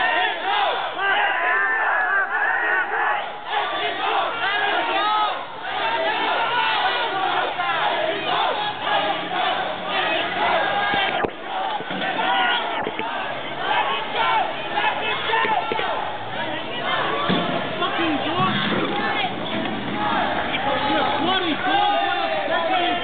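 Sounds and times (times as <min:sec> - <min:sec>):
crowd shouting: 0:00.0 - 0:23.0.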